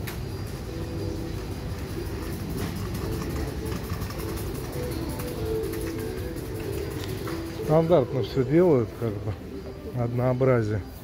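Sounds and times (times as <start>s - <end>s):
faint background music: 0.0s - 11.0s
shop room rumble: 0.0s - 11.0s.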